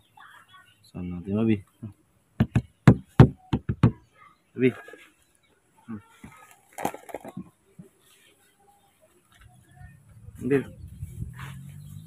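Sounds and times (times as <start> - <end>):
sharp knocks: 2.4 - 4.0.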